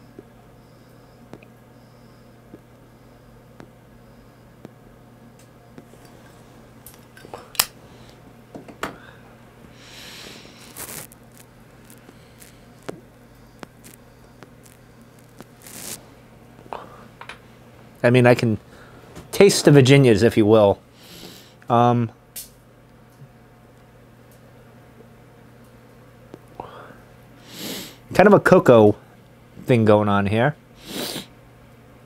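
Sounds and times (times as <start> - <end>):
steady low hum: 0.0 - 32.0
breathy exhales: 8.9 - 10.8, 26.6 - 28.0.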